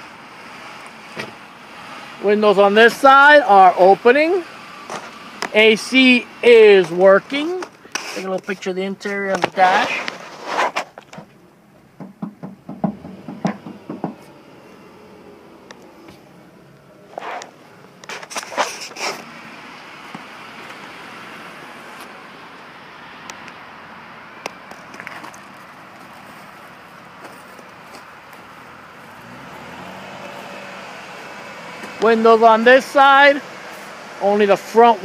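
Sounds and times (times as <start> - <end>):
faint vehicle engine: 0.0 - 35.0
outdoor vehicle noise: 0.0 - 35.0
car door opening and shutting: 1.1 - 1.4, 9.3 - 20.8.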